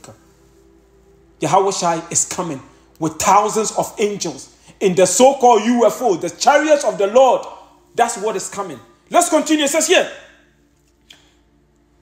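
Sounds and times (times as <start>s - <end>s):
faint steady hum: 0.0s - 12.0s
man's voice: 1.4s - 10.4s.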